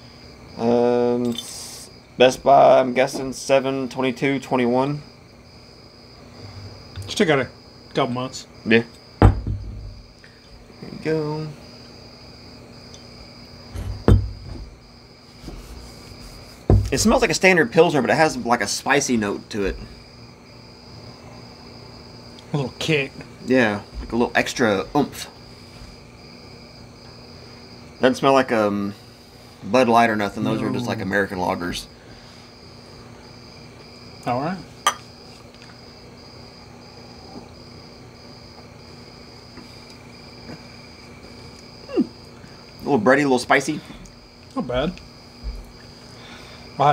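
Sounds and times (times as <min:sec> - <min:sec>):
insect trilling: 0:00.1 - 0:46.9
glass bottle knock: 0:09.2 - 0:10.0, 0:13.8 - 0:14.6
bottle dull thump: 0:09.2 - 0:10.1, 0:13.8 - 0:14.8, 0:16.7 - 0:17.0.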